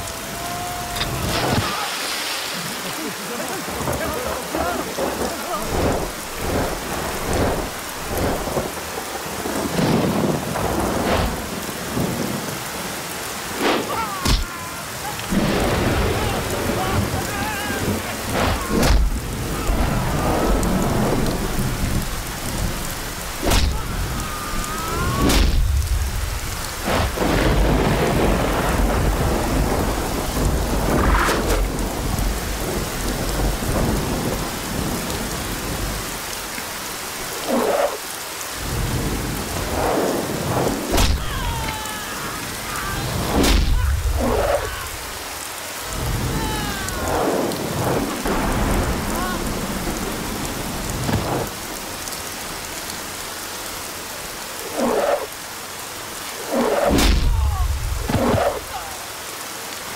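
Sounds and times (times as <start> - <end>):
thunder rumbling: 0.0 - 36.2, 38.6 - 52.7, 56.4 - 59.0
heavy rain falling: 0.0 - 59.9
sharp thunder cracks: 5.0 - 8.8, 15.3 - 17.2, 17.8 - 24.2, 25.2 - 35.0, 38.7 - 41.3, 43.1 - 44.6, 47.0 - 51.6, 56.8 - 58.7.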